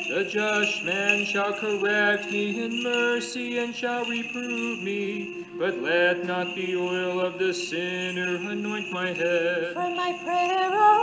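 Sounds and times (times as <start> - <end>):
liturgical chant: 0.0 - 10.6
censer bells jingling: 0.0 - 11.0.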